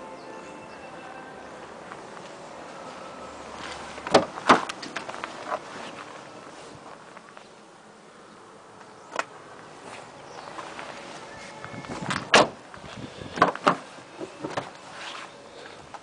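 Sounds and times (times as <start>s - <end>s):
car door shutting: 3.6s - 4.9s, 12.0s - 12.6s.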